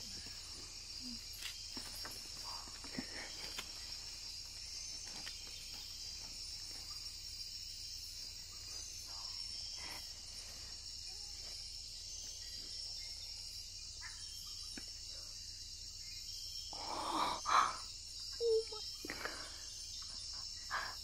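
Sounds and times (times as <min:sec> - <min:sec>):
night insects chorus: 0:00.0 - 0:21.0.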